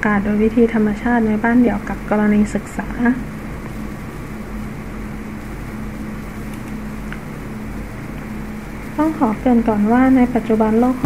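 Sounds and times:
low hum: 0:00.0 - 0:11.0
background hiss: 0:01.6 - 0:11.0.

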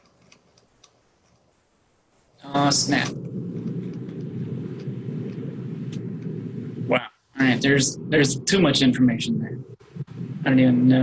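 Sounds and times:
mouse scroll wheel ticks: 0:00.0 - 0:01.5.

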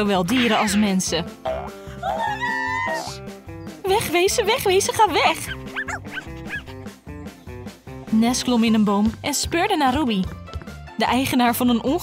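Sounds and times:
plucked background music: 0:00.0 - 0:12.0
small dog yipping: 0:05.4 - 0:06.8.

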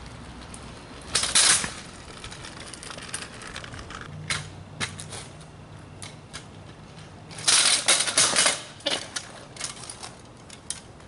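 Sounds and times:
kick scooter rolling on concrete: 0:00.0 - 0:11.0
scooter clicks and rattles: 0:00.0 - 0:11.0.

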